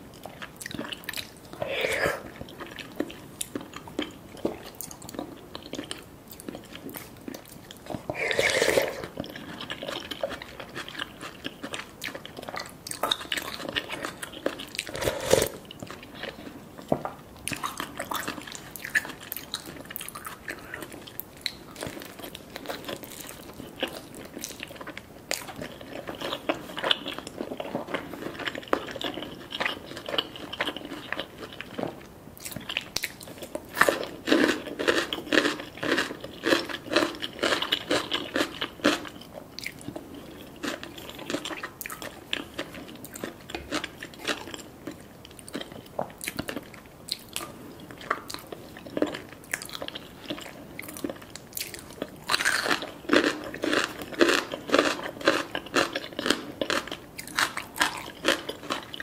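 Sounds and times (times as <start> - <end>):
person chewing: 0.1 - 59.0
crunching fried chicken: 17.5 - 59.0.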